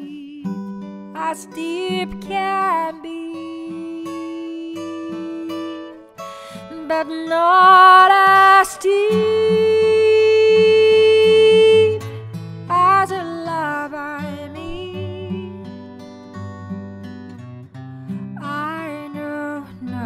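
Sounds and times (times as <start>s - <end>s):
woman singing a ballad: 0.0s - 16.2s, 18.1s - 20.0s
acoustic guitar: 0.0s - 20.0s.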